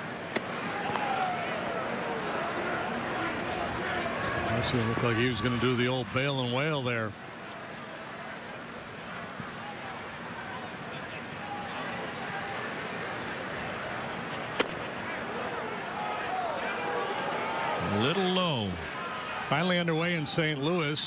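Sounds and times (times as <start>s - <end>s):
crowd ambience: 0.0s - 21.0s.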